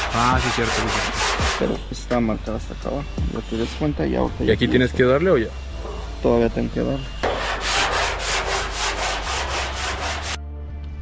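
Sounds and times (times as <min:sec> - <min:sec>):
file scraping sheet metal: 0:00.0 - 0:02.0, 0:07.2 - 0:10.4.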